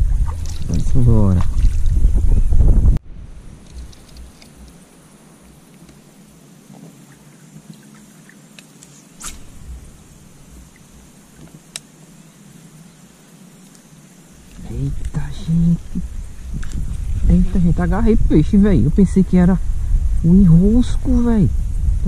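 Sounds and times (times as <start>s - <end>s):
low uneven rumble: 0.0s - 22.0s
small clicks: 3.6s - 4.8s.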